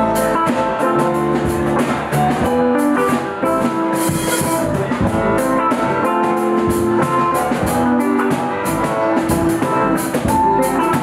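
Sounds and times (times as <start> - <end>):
drum kit with cymbals: 0.0 - 11.0
guitar notes: 0.0 - 11.0.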